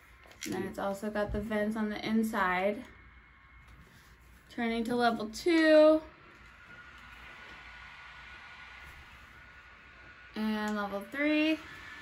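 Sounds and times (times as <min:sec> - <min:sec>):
neck fan running: 0:00.0 - 0:12.0.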